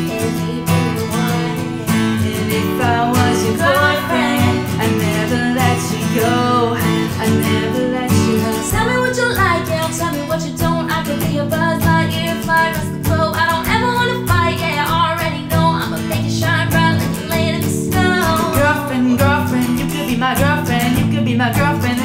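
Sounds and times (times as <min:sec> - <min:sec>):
man singing: 0:00.0 - 0:08.9, 0:18.2 - 0:22.0
acoustic guitar strummed: 0:00.0 - 0:22.0
woman singing: 0:00.0 - 0:22.0.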